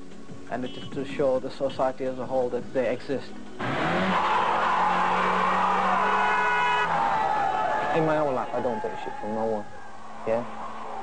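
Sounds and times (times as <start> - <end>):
cars driving along street: 3.6 - 7.8.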